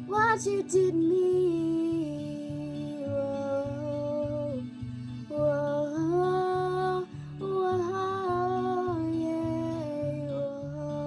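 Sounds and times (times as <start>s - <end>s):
girl singing wordless notes: 0.0s - 11.0s
strummed guitar: 0.0s - 11.0s.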